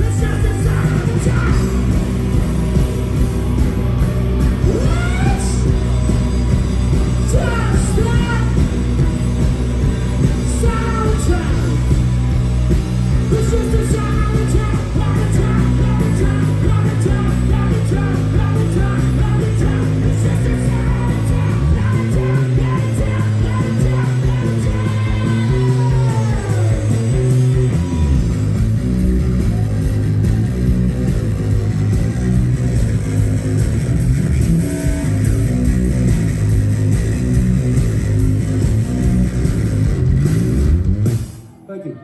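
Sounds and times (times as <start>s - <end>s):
live rock band playing: 0.0s - 42.0s.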